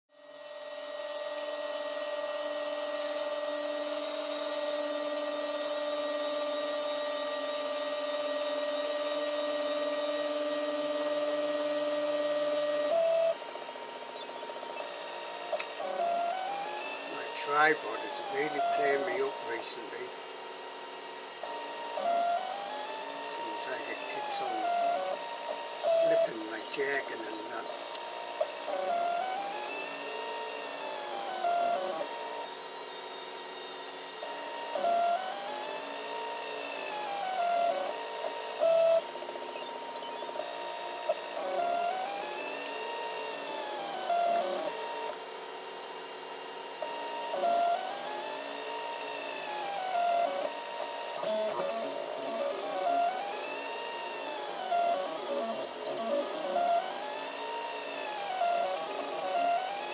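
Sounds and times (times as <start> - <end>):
stepper motors whining: 0.4 - 45.2, 46.4 - 59.9
steady hum: 1.9 - 32.4.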